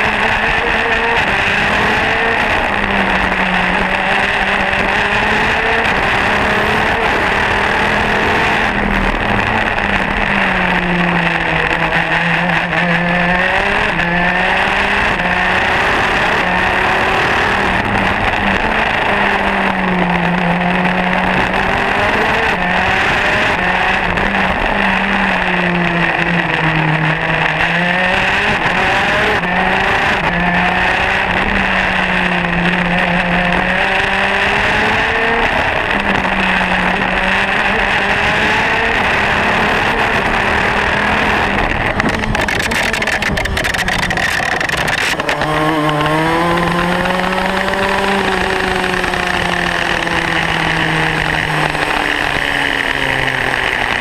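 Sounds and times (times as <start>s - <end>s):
kart engine revving: 0.0s - 54.0s.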